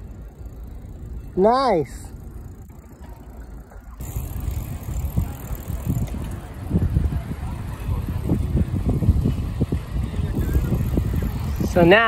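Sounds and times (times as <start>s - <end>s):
bicycle tyre road rumble: 0.0s - 12.0s
wind on microphone: 4.0s - 12.0s.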